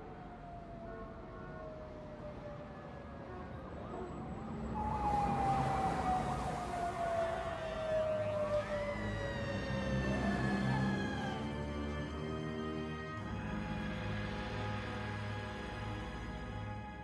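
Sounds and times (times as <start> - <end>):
sirens wailing: 0.0 - 17.0
traffic noise: 0.0 - 17.0.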